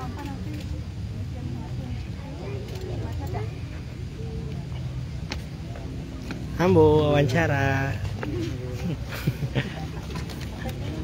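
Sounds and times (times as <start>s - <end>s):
faint crowd voices talking: 0.0s - 11.0s.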